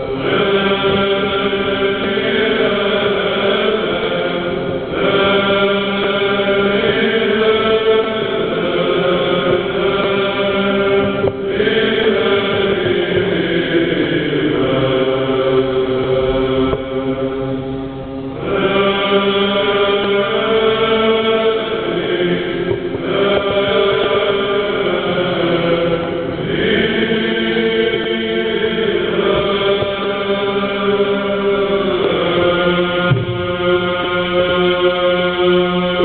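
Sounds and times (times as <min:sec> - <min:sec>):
choir singing a hymn: 0:00.0 - 0:36.0.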